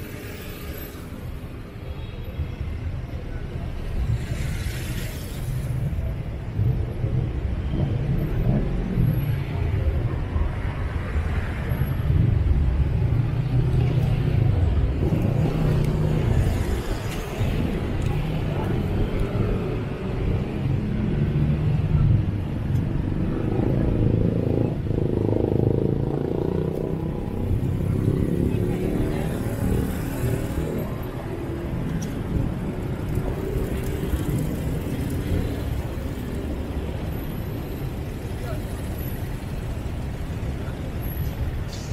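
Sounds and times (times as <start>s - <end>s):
car engines passing: 3.1s - 41.9s
motorbike engines passing: 3.8s - 41.9s.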